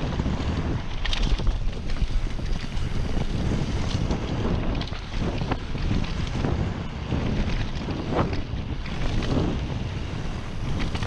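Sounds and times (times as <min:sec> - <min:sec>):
bike clicks and rattles: 0:00.0 - 0:11.0
wind on microphone: 0:00.0 - 0:11.0.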